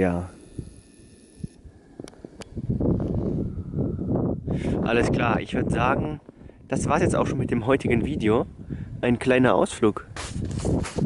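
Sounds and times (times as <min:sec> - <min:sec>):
wind rumbling on microphone: 0:00.4 - 0:11.0.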